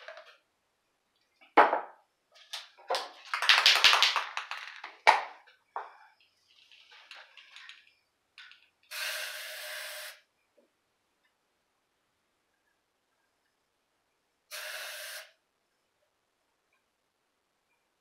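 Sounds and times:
spray paint can spraying: 8.9s - 10.2s, 14.5s - 15.4s.

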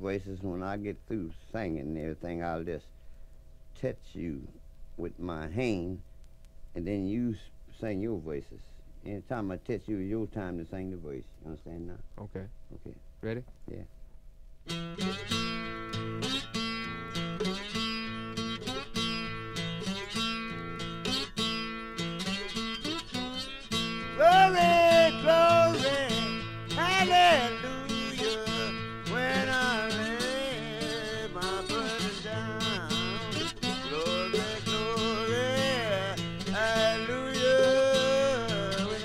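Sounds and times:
acoustic guitar playing: 14.6s - 39.0s
person singing: 24.1s - 39.0s.

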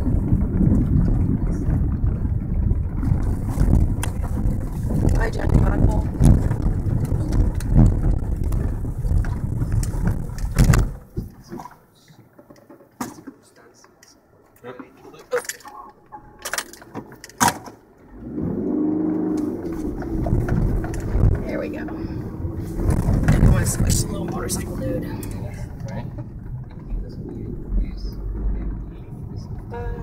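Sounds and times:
car knocks and rattles: 0.0s - 13.4s, 15.2s - 30.0s
car engine and road noise: 0.0s - 30.0s.

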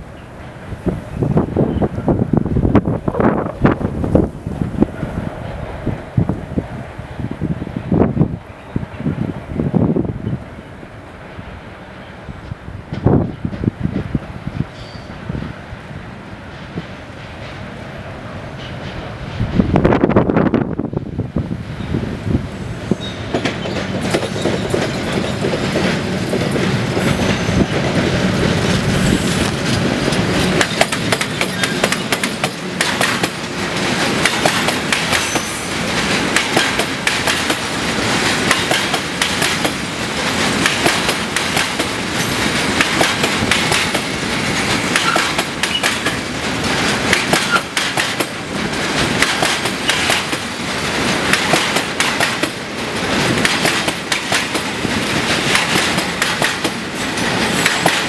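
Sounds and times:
electric locomotive rumbling past: 0.0s - 58.0s
train wheels clickety-clack: 12.4s - 20.3s, 22.8s - 58.0s.

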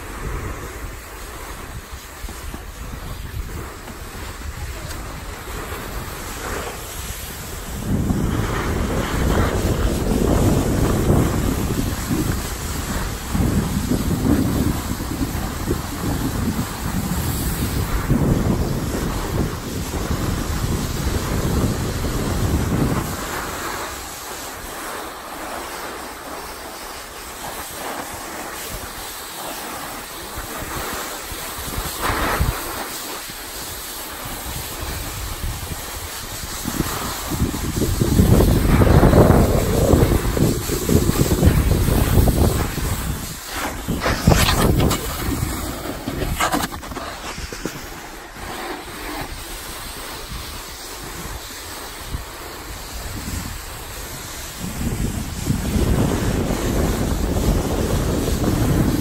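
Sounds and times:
snowboard scraping over snow: 0.0s - 59.0s
wind rushing over microphone: 0.0s - 59.0s.

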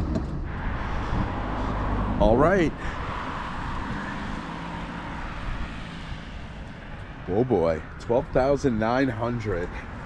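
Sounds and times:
low engine hum: 0.0s - 8.8s
road traffic noise: 0.0s - 10.0s.

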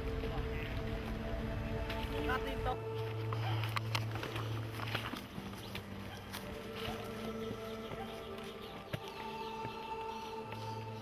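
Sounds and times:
dry brush rustling and snapping: 0.0s - 9.1s
footsteps crunching: 0.0s - 11.0s.

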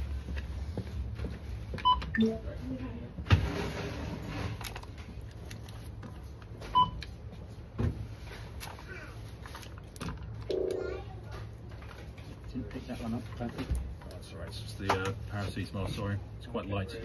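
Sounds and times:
murmur of the store: 0.0s - 17.0s.

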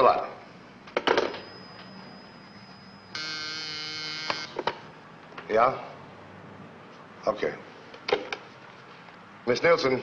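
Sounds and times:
desk telephone buzzer: 1.1s - 4.8s.

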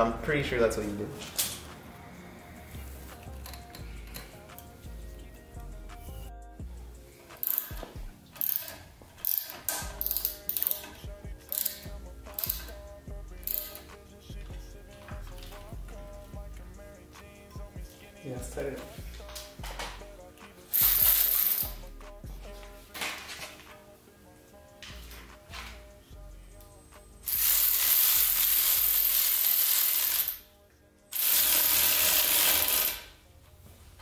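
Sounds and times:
background music: 0.0s - 34.0s
metallic clicks of hand tools: 3.3s - 4.7s, 7.4s - 12.8s, 13.4s - 14.0s
loud bursts of hiss: 20.8s - 21.8s, 27.3s - 30.4s.

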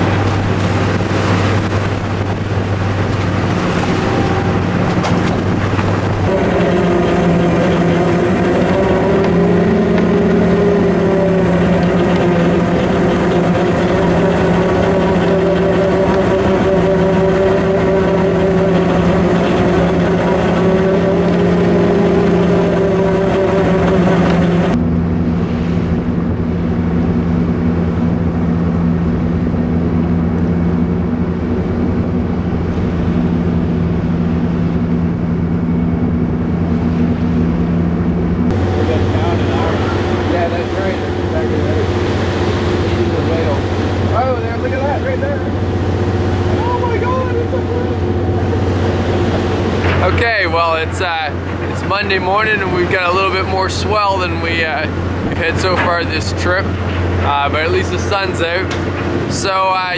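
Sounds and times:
diesel engine drone: 0.0s - 59.9s.

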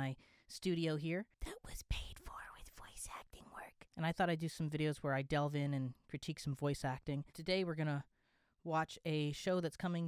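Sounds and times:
man whispering: 1.5s - 3.9s.

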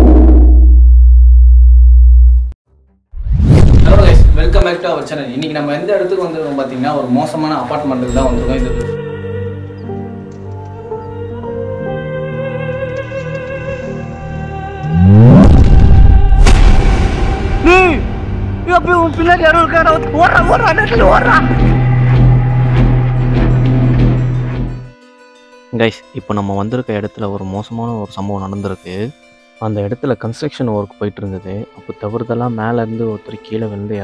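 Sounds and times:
deep bass drone: 0.0s - 2.5s
sharp hit: 8.1s - 8.9s, 15.4s - 18.6s
rising and falling tone: 14.8s - 16.3s.

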